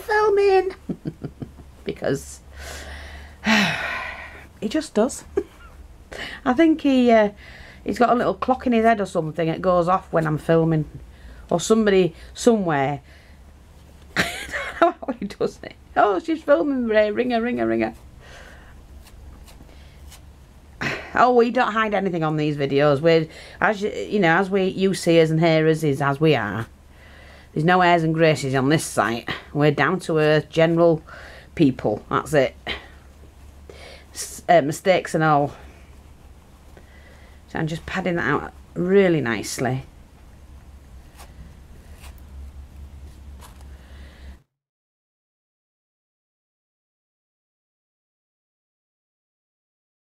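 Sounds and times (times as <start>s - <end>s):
steady low hum: 0.0s - 44.5s
woman exhaling: 2.5s - 4.5s
ticks of handling stuffing wadding: 18.9s - 20.5s
soft scrapes: 40.9s - 43.7s.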